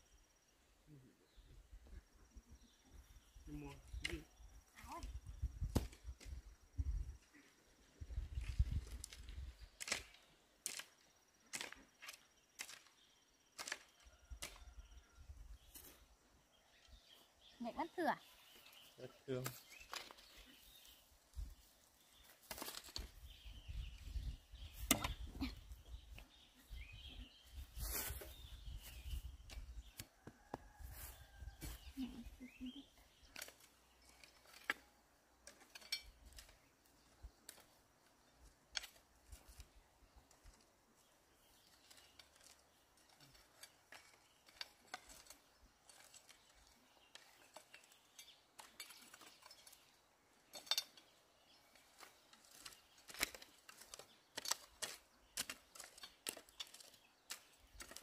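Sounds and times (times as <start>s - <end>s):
hoes scraping into soil: 5.0s - 16.2s, 18.2s - 58.0s.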